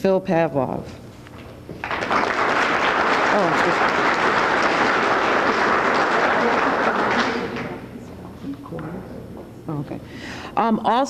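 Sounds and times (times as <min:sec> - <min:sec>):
audience applauding: 0:01.8 - 0:07.9.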